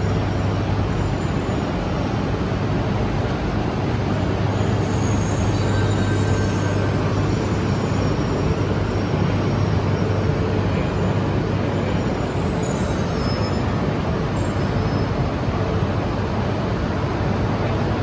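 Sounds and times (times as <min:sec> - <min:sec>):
train humming and rushing: 0:00.0 - 0:18.0.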